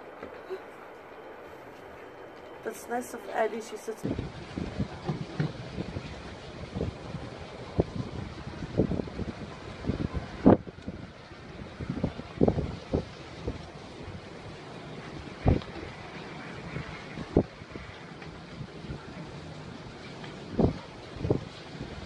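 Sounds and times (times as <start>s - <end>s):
wind buffeting microphone: 4.0s - 22.0s.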